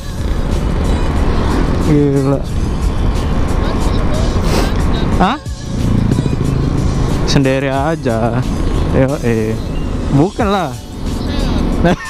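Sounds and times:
background music: 0:00.0 - 0:12.0
scooter engine running: 0:00.0 - 0:12.0.

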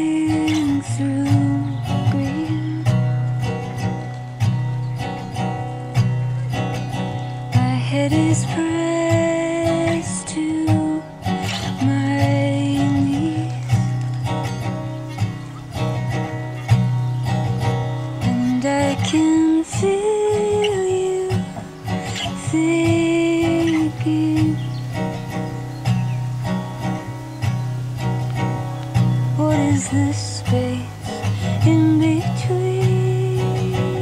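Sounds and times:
acoustic guitar picked chords: 0:00.0 - 0:34.0
sliding guitar melody: 0:00.0 - 0:34.0.

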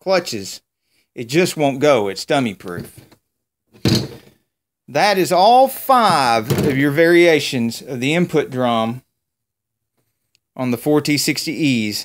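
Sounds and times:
metal part set down on table: 0:03.8 - 0:04.3.

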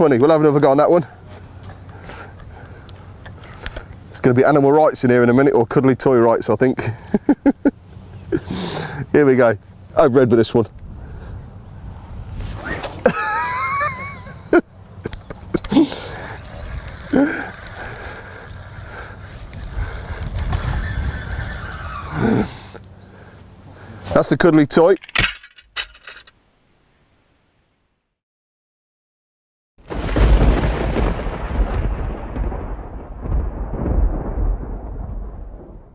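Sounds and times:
voice: 0:00.0 - 0:01.1, 0:04.2 - 0:07.0, 0:09.0 - 0:10.7, 0:24.1 - 0:25.0
wind rumble on microphone: 0:10.6 - 0:12.8, 0:15.0 - 0:22.8
wavering reel whine: 0:15.7 - 0:22.9.

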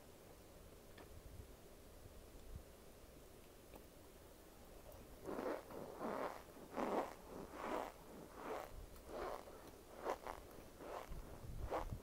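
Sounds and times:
crunchy chewing: 0:05.2 - 0:12.0.

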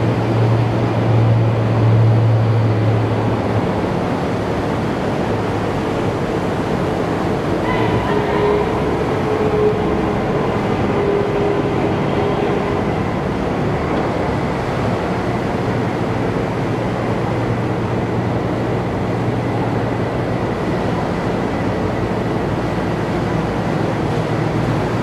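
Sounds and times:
diesel engines rumbling: 0:00.0 - 0:25.0.

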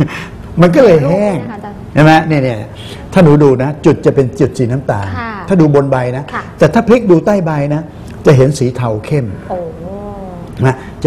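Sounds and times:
person speaking: 0:00.8 - 0:03.1.

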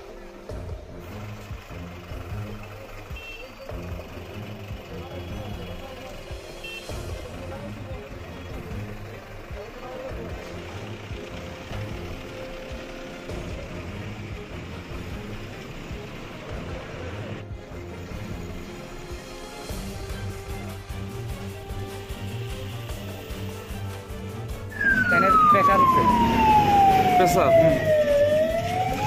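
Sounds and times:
vehicle engine running: 0:00.3 - 0:29.0.

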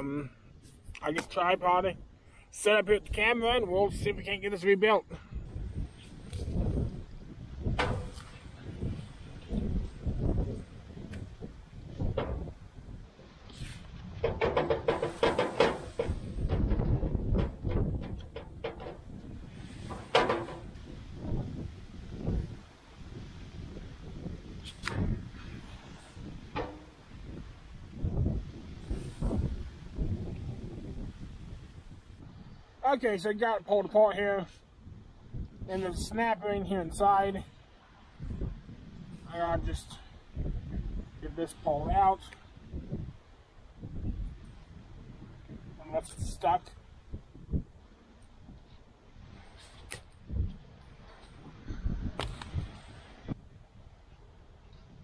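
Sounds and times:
wind buffeting microphone: 0:05.2 - 0:55.0.

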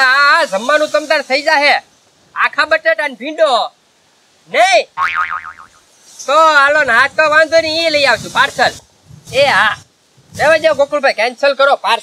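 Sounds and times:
cartoon boing effect: 0:05.0 - 0:05.8.

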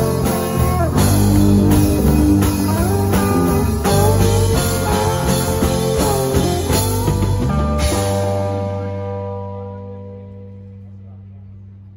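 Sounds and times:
rock band held chord: 0:00.0 - 0:11.3.

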